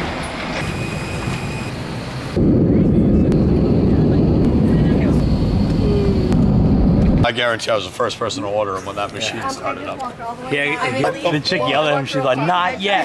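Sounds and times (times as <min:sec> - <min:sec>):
jet airliner rumbling on runway: 0:00.0 - 0:09.1
passengers boarding airliner cabin: 0:00.0 - 0:13.0.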